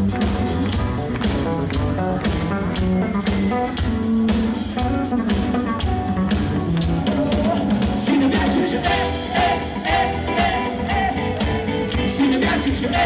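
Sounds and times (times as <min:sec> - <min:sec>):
drum kit beat: 0:00.0 - 0:13.0
electric guitar: 0:00.0 - 0:13.0
live band playing: 0:00.0 - 0:13.0.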